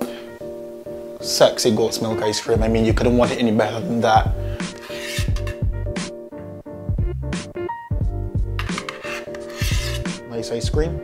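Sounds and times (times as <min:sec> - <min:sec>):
background music with steady beat: 0:00.0 - 0:11.0
spoon scraping ice cream: 0:04.7 - 0:05.6, 0:08.6 - 0:10.1.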